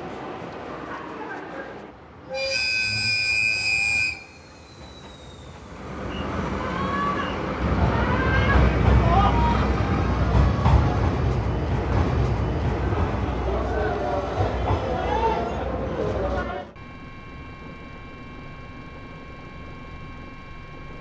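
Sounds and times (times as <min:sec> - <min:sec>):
train rumbling: 0:00.0 - 0:16.9
locomotive horn blast: 0:02.3 - 0:04.3.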